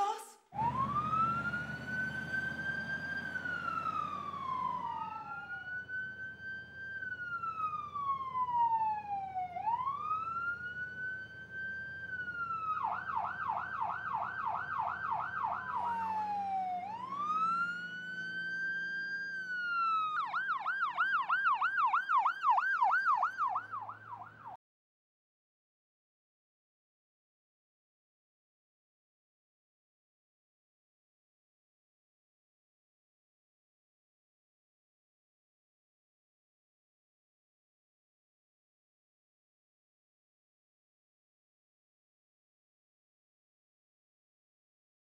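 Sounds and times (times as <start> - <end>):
ambulance siren: 0.6 - 24.6
low vehicle rumble: 0.6 - 24.6.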